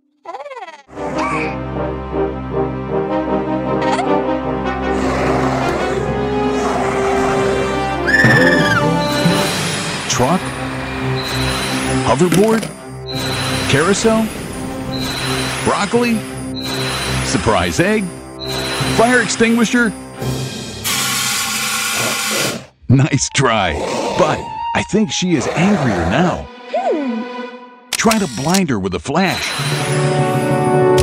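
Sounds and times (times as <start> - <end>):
cartoon background music: 0.0 - 20.7, 21.9 - 31.0
short rising sound effect: 8.1 - 10.1
fire extinguisher spray hiss: 20.8 - 22.7.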